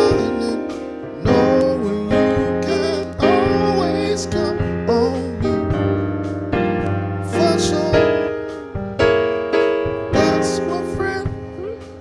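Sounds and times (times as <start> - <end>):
church band playing gospel: 0.0 - 12.0.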